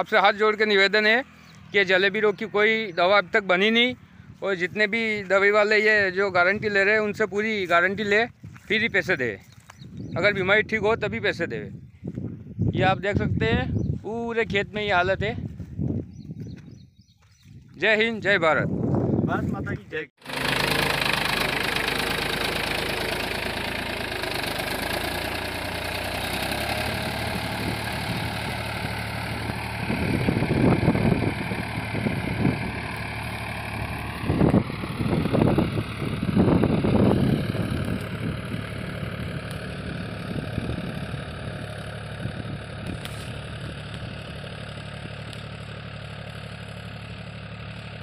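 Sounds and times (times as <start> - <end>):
tractor diesel engine running: 0.0 - 48.0.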